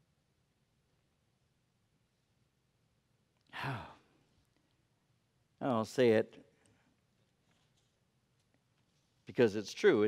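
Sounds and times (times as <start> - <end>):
man sighing: 3.5 - 4.1.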